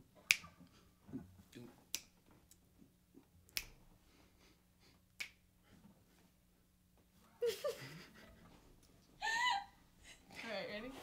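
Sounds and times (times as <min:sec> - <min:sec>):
finger snaps: 0:00.3 - 0:00.5, 0:01.9 - 0:02.6, 0:03.5 - 0:03.8, 0:05.1 - 0:05.4.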